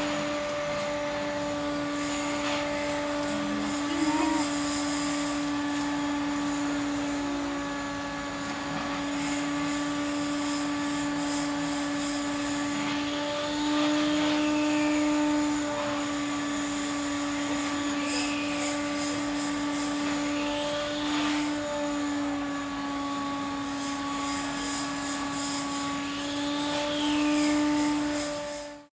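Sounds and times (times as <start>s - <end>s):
fly buzzing: 3.2s - 5.2s.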